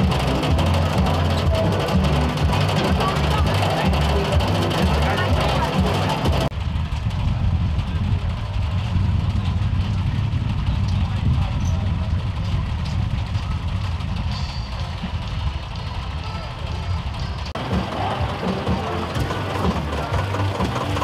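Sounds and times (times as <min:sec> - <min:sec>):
background voices: 0:00.0 - 0:06.5, 0:17.6 - 0:21.0
low engine rumble: 0:00.0 - 0:21.0
tractor engine and harvester machinery: 0:00.0 - 0:21.0.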